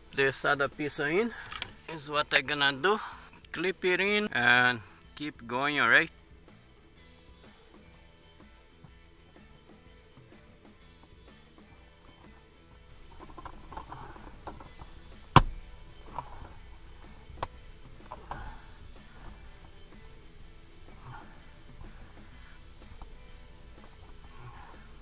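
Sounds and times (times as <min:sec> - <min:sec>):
faint background music: 0:00.0 - 0:25.0.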